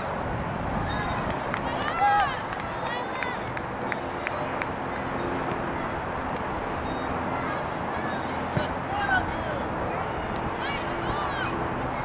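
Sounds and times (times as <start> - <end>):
outdoor background noise: 0.0 - 12.0.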